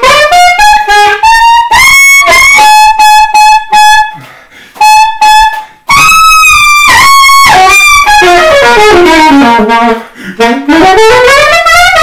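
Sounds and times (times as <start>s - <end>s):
solo saxophone jazz: 0.0s - 12.0s.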